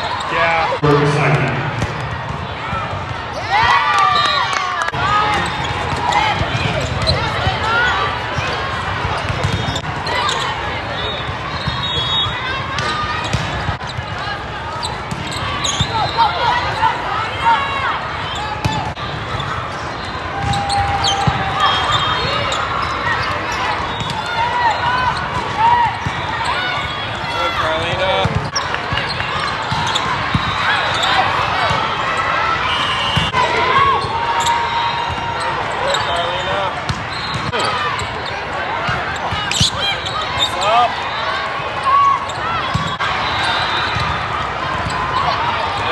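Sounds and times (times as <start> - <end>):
volleyballs being hit: 1.1 - 3.2
sneakers squeaking on court: 5.2 - 17.0, 18.3 - 32.3, 33.1 - 40.9, 41.8 - 44.2.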